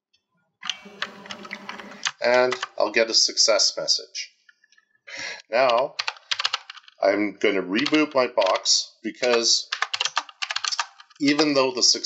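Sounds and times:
keyboard keystrokes: 0:05.7 - 0:07.0, 0:09.2 - 0:11.5.

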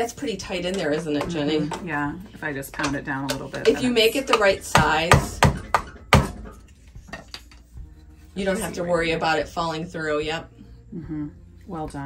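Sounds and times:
metal grater knocking: 0:02.8 - 0:07.2.

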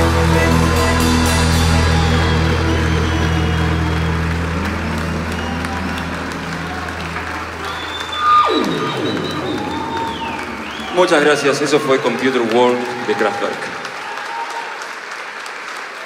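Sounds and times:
rock band held chord: 0:00.0 - 0:13.2
audience applause and cheering: 0:00.0 - 0:16.0
sliding note dropping in pitch: 0:01.1 - 0:12.2.

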